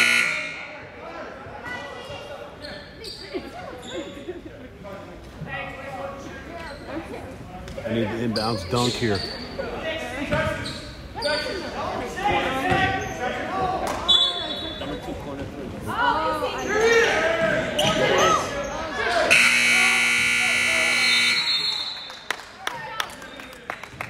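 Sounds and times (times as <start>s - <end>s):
electronic scoreboard buzzer: 0.0s - 0.7s, 19.3s - 21.6s.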